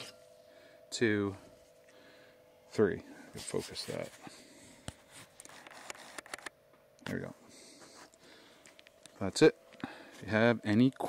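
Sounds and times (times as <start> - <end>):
camera handling clicks: 5.5 - 6.5.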